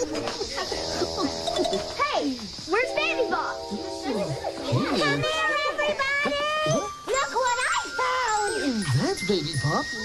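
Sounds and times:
light background music: 0:02.7 - 0:10.0
children calling out: 0:04.1 - 0:08.7.

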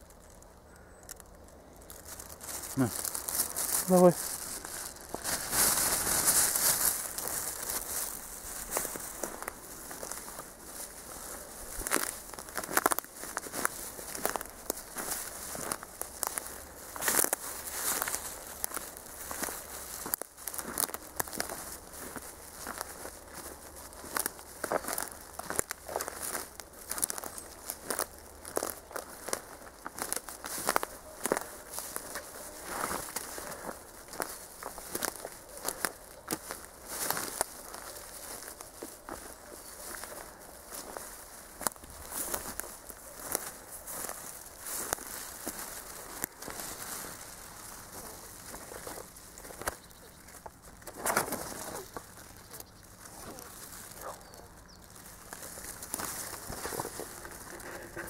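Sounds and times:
footsteps on dry leaves: 0:00.0 - 0:58.0
leaves rustling: 0:00.0 - 0:58.0.

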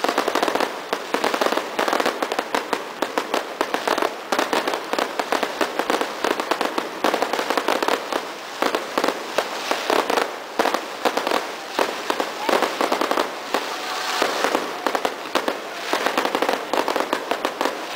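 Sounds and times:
fireworks bursting: 0:00.0 - 0:17.9.

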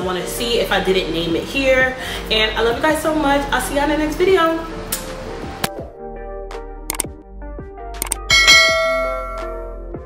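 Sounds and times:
background music: 0:00.0 - 0:10.0
quick clicks: 0:06.9 - 0:07.1, 0:08.0 - 0:08.3
bright bell chime: 0:08.3 - 0:09.8.

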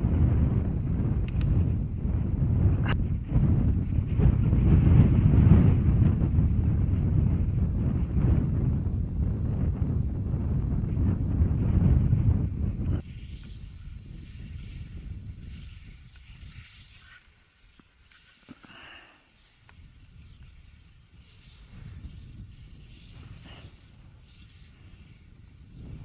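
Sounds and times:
wind buffeting microphone: 0:00.0 - 0:17.1, 0:19.4 - 0:26.0.

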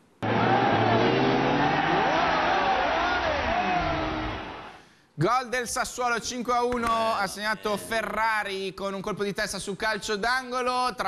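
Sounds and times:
overlapping voices: 0:00.2 - 0:04.8.

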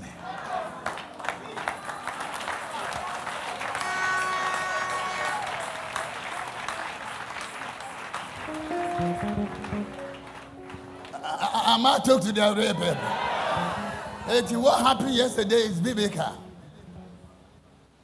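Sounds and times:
congregation applauding: 0:00.5 - 0:12.0
instrumental music: 0:08.5 - 0:11.4.

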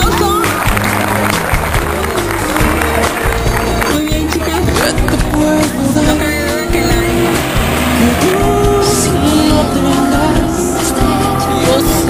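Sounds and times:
music playing: 0:00.0 - 0:12.0
firework fountains hissing: 0:06.7 - 0:08.9.

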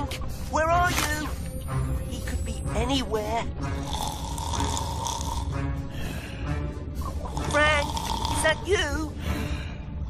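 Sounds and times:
background music: 0:00.0 - 0:10.0
cartoon snoring: 0:03.8 - 0:05.5, 0:07.3 - 0:08.6.

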